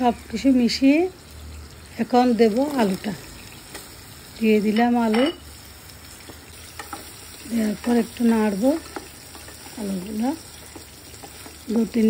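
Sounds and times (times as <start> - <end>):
potatoes sizzling in a pot: 0.0 - 12.0.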